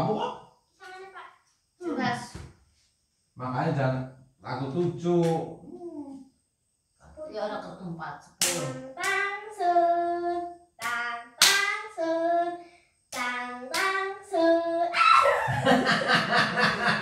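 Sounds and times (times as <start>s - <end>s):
child and woman chanting: 0.8s - 1.2s, 8.4s - 15.5s
hand claps: 8.4s - 9.2s, 10.8s - 11.8s, 13.1s - 14.0s
overlapping voices: 8.4s - 9.3s, 10.8s - 11.9s, 14.9s - 17.0s.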